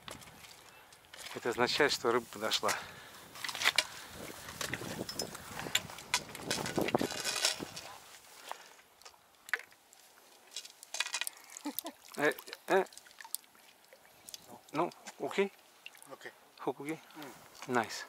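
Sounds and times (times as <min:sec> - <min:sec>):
fish splashing in shallow water: 0:08.9 - 0:16.2.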